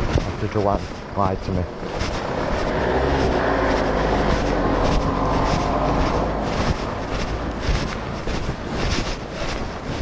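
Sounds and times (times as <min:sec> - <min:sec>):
motor vehicle engine: 0:00.0 - 0:10.0.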